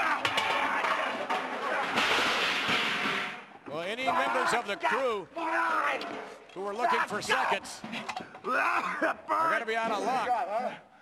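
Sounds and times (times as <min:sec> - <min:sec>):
clatter of kitchenware being thrown: 0:00.0 - 0:03.4
man shouting: 0:03.9 - 0:06.0, 0:06.7 - 0:07.8.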